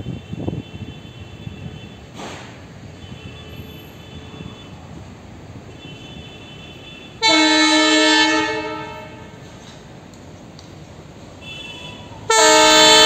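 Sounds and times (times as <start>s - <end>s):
low rumble of train: 0.0s - 13.0s
locomotive horn blast: 5.7s - 9.6s, 11.4s - 13.0s.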